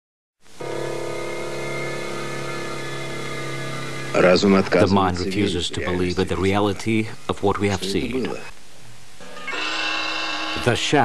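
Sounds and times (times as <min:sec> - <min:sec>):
low droning hum with overtones: 0:00.5 - 0:09.4.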